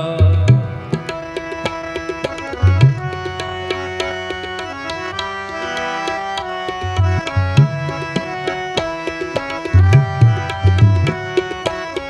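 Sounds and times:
harmonium chords: 0.0s - 12.0s
tabla rhythm: 0.0s - 12.0s.

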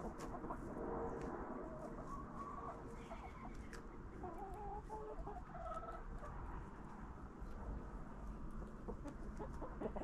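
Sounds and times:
chickens clucking: 0.0s - 0.8s, 1.7s - 6.6s, 8.5s - 10.0s.

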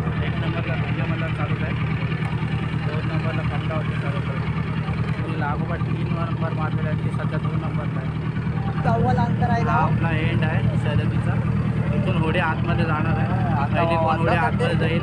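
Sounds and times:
motorboat engine running: 0.0s - 15.0s
people talking: 0.0s - 15.0s.

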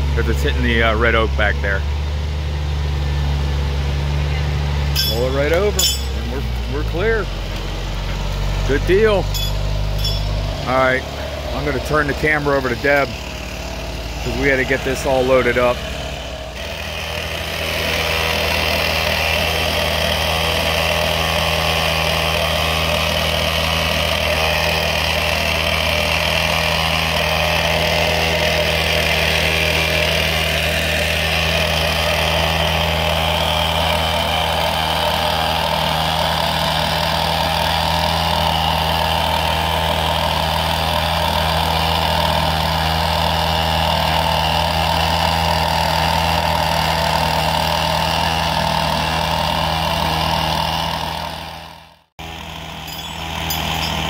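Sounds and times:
diesel truck engine running: 0.0s - 54.0s.

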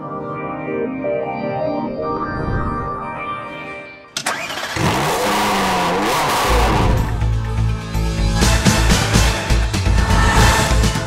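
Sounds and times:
car engine starting and revving: 4.2s - 7.5s
heavy bass theme music: 4.8s - 11.0s.

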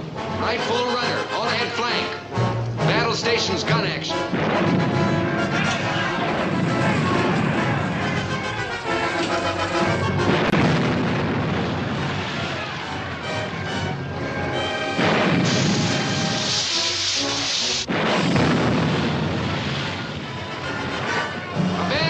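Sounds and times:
film score music: 0.0s - 22.0s
gun firing sharp crack: 4.2s - 9.5s, 14.9s - 16.9s, 17.7s - 21.3s
loud rushing blast: 4.2s - 22.0s.

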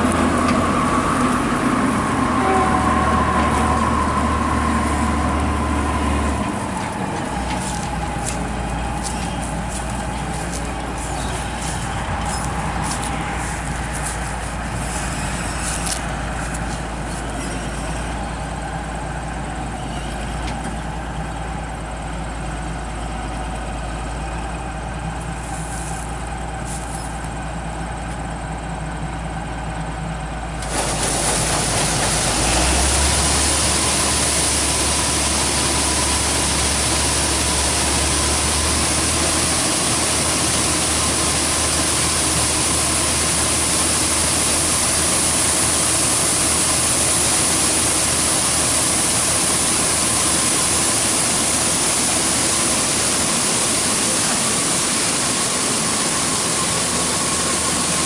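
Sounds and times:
combine engine running: 0.0s - 58.0s
grain pouring from auger: 30.6s - 58.0s.

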